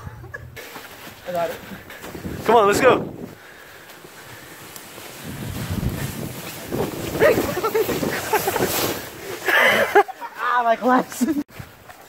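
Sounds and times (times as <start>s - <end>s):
plastic sled sliding on snow: 0.6s - 12.0s.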